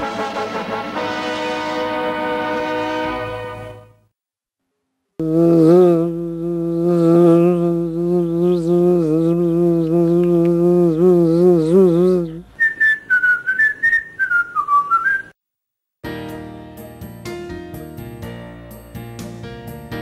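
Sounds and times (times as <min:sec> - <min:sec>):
quick high whistled tune: 0:12.6 - 0:15.4.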